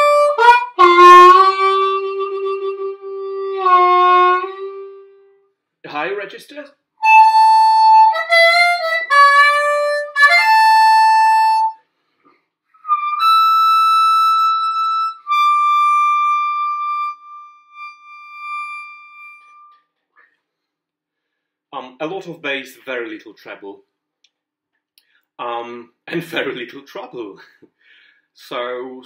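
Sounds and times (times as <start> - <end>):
harmonica bent and held notes: 0.0 - 5.3, 7.0 - 11.8, 12.8 - 19.9.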